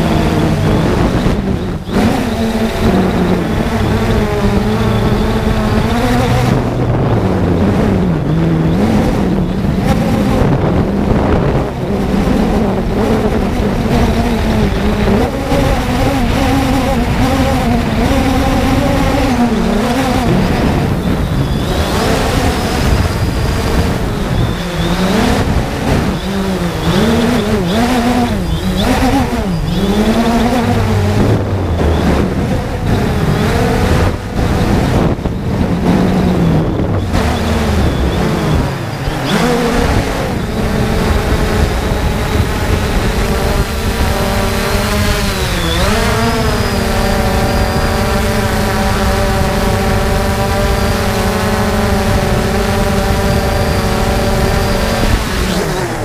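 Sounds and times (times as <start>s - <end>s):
drone propellers whirring: 0.0s - 56.0s.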